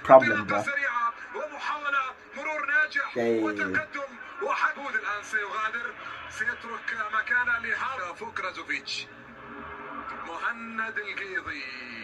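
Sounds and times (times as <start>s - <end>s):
commentator speaking: 0.0s - 0.7s, 3.2s - 3.9s.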